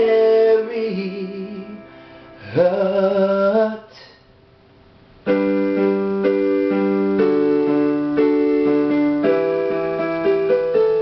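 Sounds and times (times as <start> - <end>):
electronic keyboard piano chords: 5.2 - 11.0.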